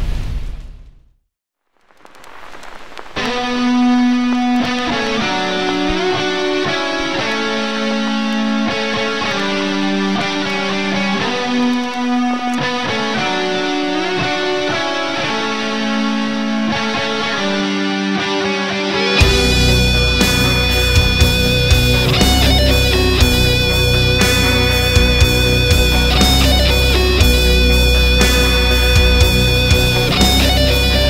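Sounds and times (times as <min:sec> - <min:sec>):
electric guitar slow melody: 0:02.1 - 0:31.0.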